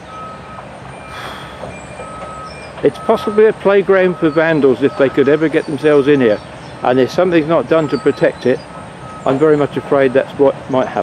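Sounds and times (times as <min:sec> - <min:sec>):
reversing alarm beeping: 0:00.0 - 0:10.2
site machinery: 0:00.0 - 0:11.0.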